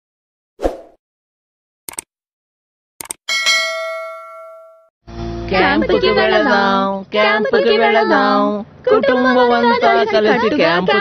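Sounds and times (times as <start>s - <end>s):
bright bell ding: 3.3s - 4.9s.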